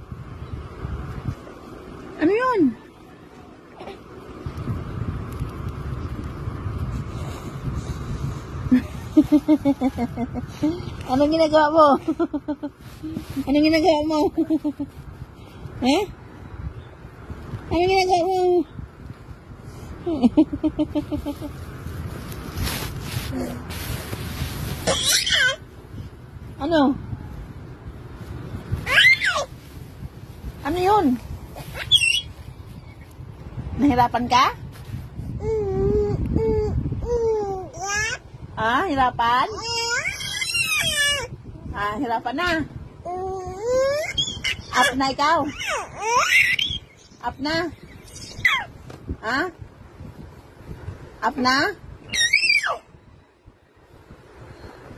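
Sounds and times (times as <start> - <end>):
baby squealing: 24.8 - 25.6, 28.9 - 29.5, 39.6 - 41.3, 43.4 - 46.9, 48.2 - 48.7, 52.1 - 52.9.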